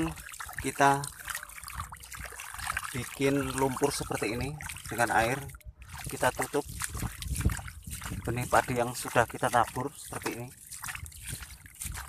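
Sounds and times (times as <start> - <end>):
hand splashing in muddy water: 0.0 - 12.0.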